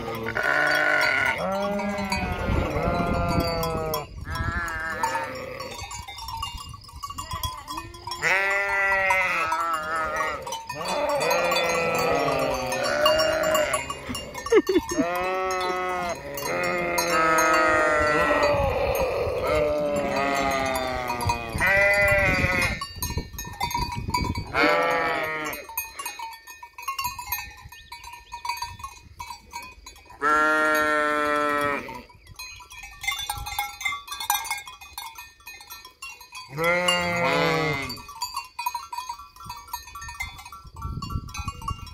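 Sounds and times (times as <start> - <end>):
sheep bleating: 0.0 - 5.7, 8.2 - 14.2, 15.0 - 22.8, 24.5 - 25.7, 30.2 - 32.0, 36.5 - 38.0.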